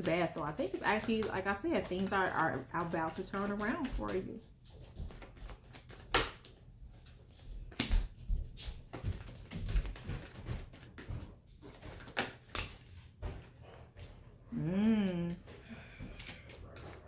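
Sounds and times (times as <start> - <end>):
cards being shuffled: 0.0 - 4.2, 4.8 - 7.1, 7.7 - 13.0
cards tapping and slapping: 0.0 - 6.6, 7.7 - 13.0.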